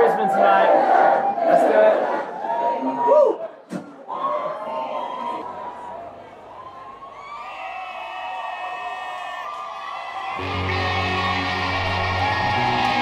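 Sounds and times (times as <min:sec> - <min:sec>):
crowd whooping and cheering: 0:01.1 - 0:13.0
electric guitar low chord: 0:10.4 - 0:13.0.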